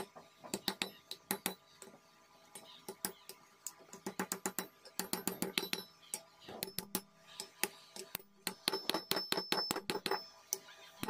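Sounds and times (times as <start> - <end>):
hammer tapping on metal: 0.0 - 1.9, 3.9 - 5.9, 6.6 - 10.3.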